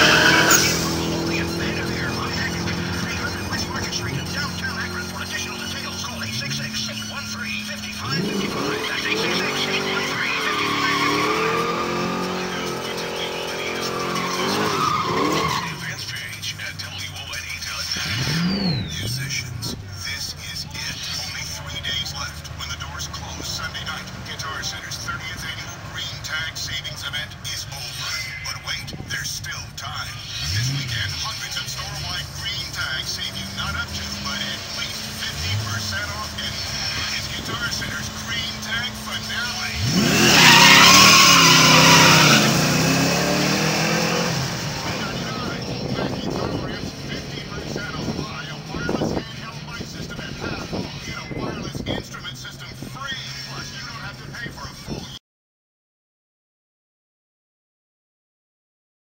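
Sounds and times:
short engine rev blips: 0.0 - 16.0, 18.0 - 19.9, 30.3 - 49.1
car engine revving hard: 0.0 - 16.3, 17.6 - 27.9, 30.1 - 52.0
car engines idling: 0.0 - 55.2.

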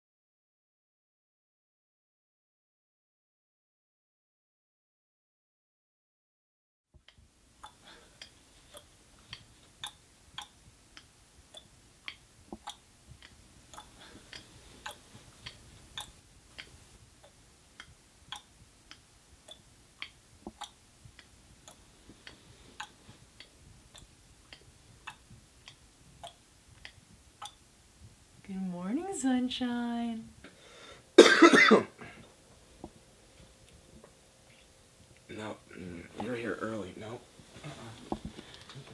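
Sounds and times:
faint steady hiss: 7.0 - 38.9
sharp ticks: 7.6 - 27.6.

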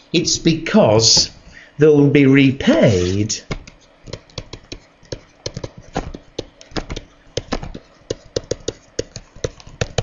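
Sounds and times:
pen tapping and clicking on paper: 3.5 - 10.0.

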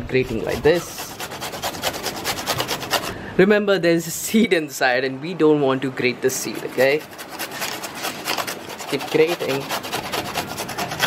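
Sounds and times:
mango rasping on metal grater: 0.0 - 3.2, 6.3 - 11.0.

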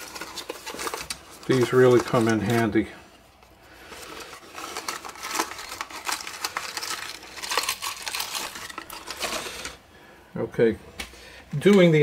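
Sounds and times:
cardboard box crinkling: 0.0 - 2.9, 3.8 - 9.8.

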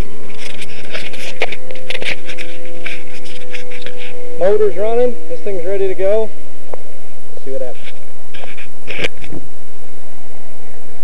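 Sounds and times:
camera handling rubbing and clicking: 0.3 - 4.2, 7.8 - 9.4.

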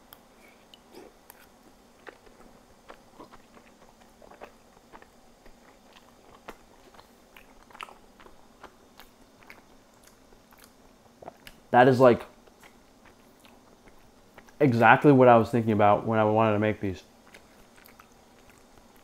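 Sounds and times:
person chewing dumpling: 0.0 - 11.6, 12.4 - 14.6, 17.2 - 19.0.

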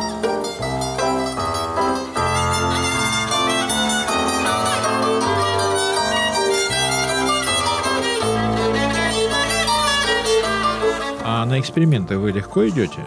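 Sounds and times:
bowed violin melody: 0.0 - 13.0.

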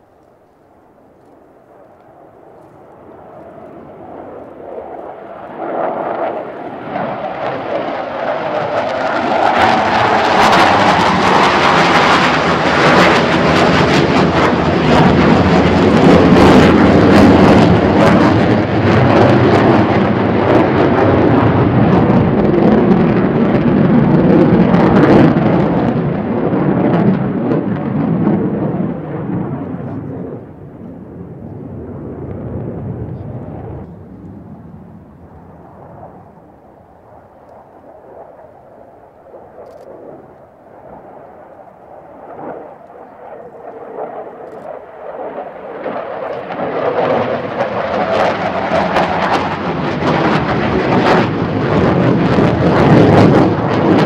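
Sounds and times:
fighter jet roar: 0.9 - 54.0.

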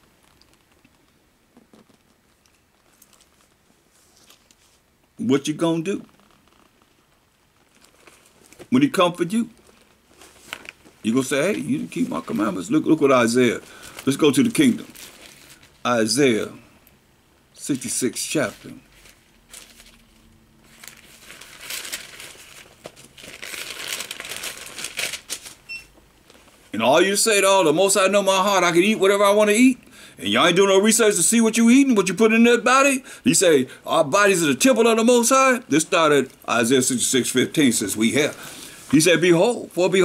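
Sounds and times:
thin pages rustling: 0.0 - 4.8, 6.1 - 8.8, 9.5 - 12.8, 13.6 - 15.8, 18.4 - 25.6.

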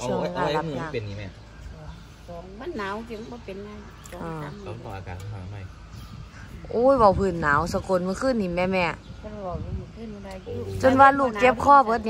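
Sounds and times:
woman speaking quietly: 10.1 - 11.9.

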